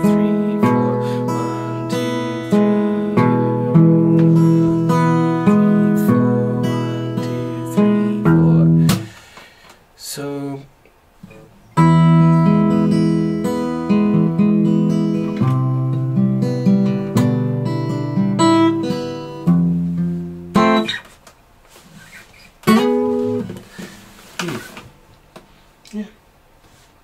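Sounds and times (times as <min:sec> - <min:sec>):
fingerpicked acoustic guitar: 0:00.0 - 0:09.2, 0:11.2 - 0:25.2.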